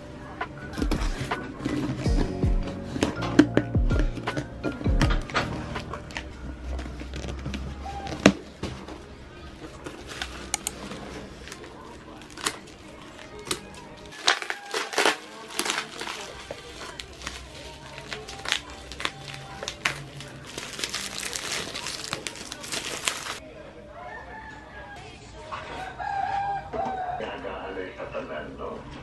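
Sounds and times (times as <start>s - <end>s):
bubble wrap crinkling: 9.6s - 23.4s.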